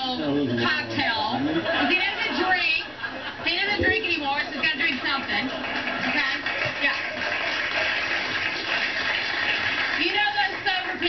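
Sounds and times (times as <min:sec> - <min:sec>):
audience laughing and applauding: 0:04.6 - 0:10.8.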